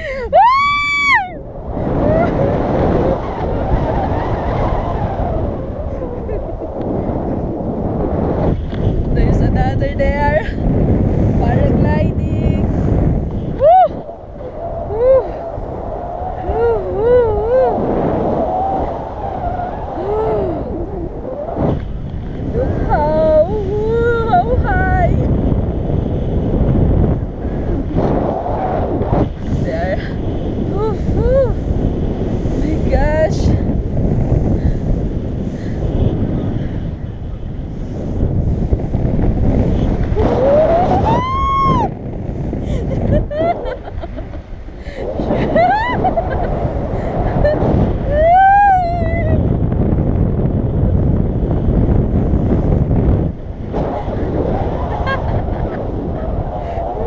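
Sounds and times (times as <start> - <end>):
woman squealing: 0.0 - 1.4, 13.6 - 14.0, 14.9 - 15.5, 16.4 - 17.8, 40.2 - 41.9, 45.4 - 46.5, 47.4 - 49.4
wind buffeting microphone: 0.0 - 57.0.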